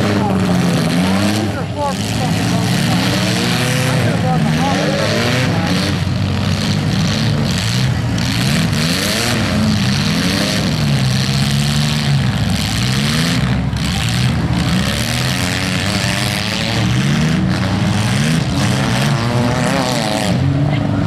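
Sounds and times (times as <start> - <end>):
car engines revving: 0.0 - 21.0.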